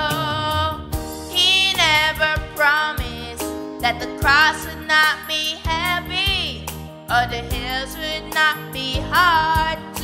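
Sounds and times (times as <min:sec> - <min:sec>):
boy singing: 0:00.0 - 0:10.0
instrumental backing: 0:00.0 - 0:10.0.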